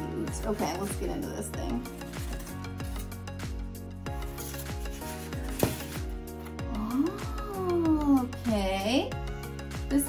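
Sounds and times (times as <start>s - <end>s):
background music with steady beat: 0.0s - 10.0s
foam sheet scraping cardboard: 4.2s - 6.1s.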